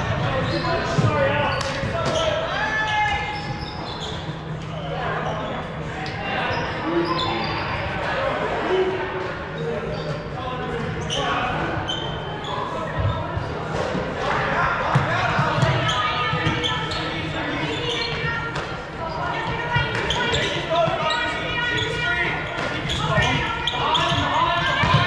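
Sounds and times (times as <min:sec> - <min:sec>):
players calling out: 0:00.0 - 0:25.0
sneakers squeaking: 0:00.0 - 0:25.0.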